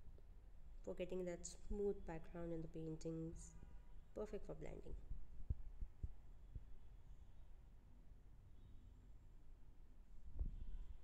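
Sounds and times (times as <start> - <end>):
faint low hum: 0.0 - 11.0
soft low thumps: 4.9 - 6.8, 10.3 - 10.7.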